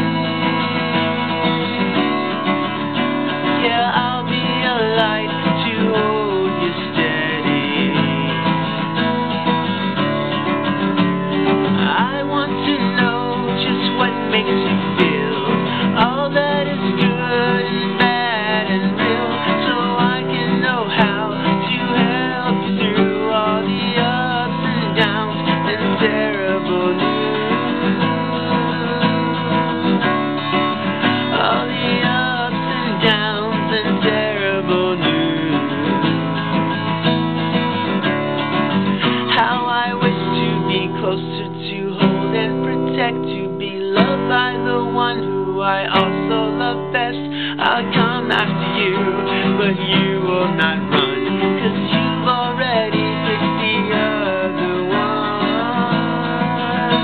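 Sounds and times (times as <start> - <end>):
man singing: 0.0 - 38.2, 38.8 - 57.0
acoustic guitar strumming: 0.0 - 57.0.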